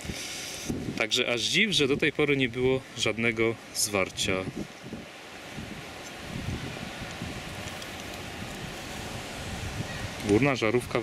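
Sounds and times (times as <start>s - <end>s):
wind buffeting microphone: 0.0s - 2.8s, 4.0s - 11.0s.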